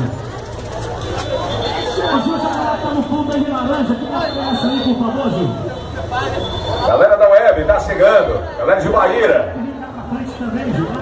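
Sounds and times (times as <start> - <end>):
crowd noise: 0.0 - 11.0
man calling over loudspeakers: 1.6 - 11.0.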